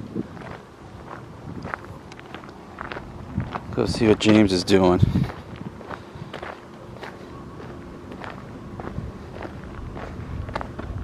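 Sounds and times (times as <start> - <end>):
footsteps on dirt: 0.0 - 11.0.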